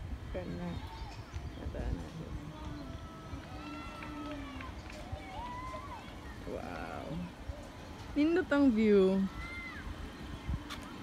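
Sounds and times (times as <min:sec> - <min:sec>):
distant people talking: 0:00.2 - 0:11.0.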